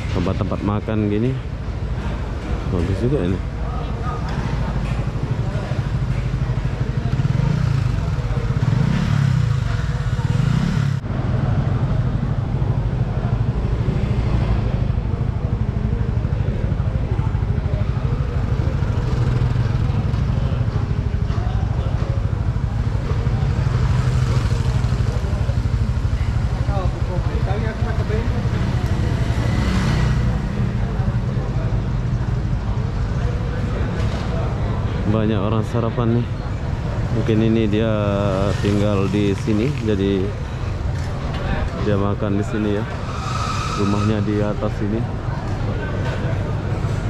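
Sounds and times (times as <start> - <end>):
motorcycle engines passing: 0.0 - 47.0
people talking: 0.0 - 47.0.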